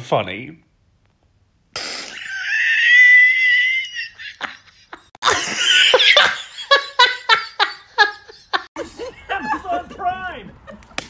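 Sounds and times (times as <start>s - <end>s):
man laughing: 2.0s - 11.0s.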